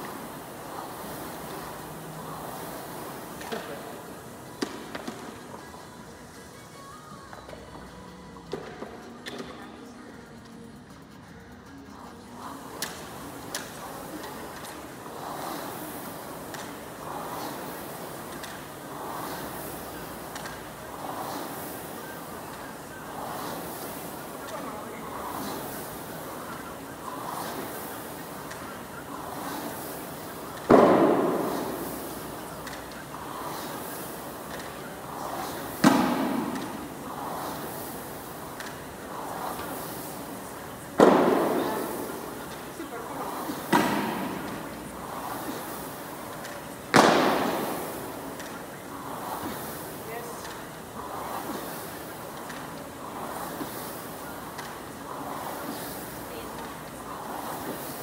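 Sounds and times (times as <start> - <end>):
rowing machine fan whooshing: 0.0 - 58.0.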